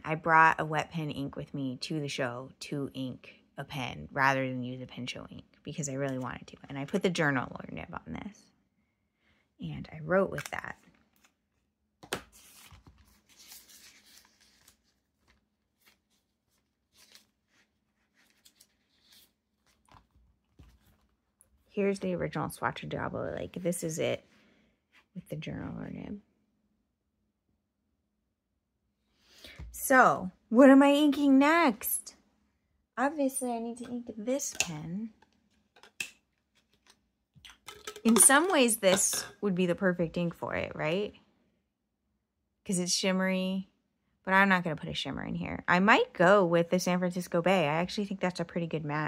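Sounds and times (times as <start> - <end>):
paper pages rustling: 10.4 - 21.7, 35.4 - 37.7
small objects clicking on desk: 34.7 - 39.2.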